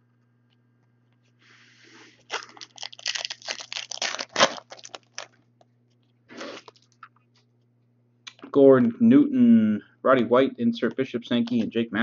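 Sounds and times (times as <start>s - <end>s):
foil wrapper tearing and crinkling: 2.2s - 5.4s.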